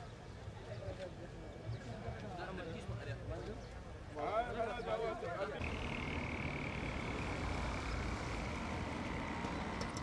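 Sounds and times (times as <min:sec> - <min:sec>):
traffic rumble: 0:05.6 - 0:10.0.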